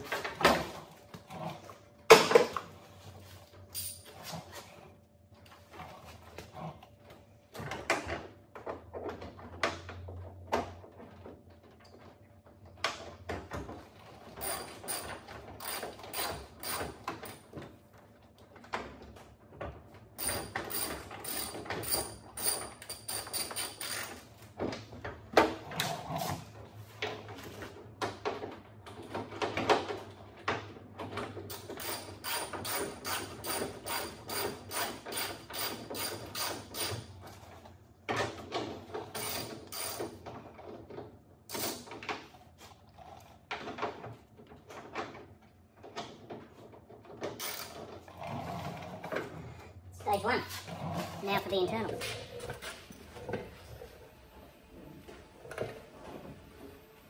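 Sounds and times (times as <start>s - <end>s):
hand ratchet clicking: 31.5s - 37.0s.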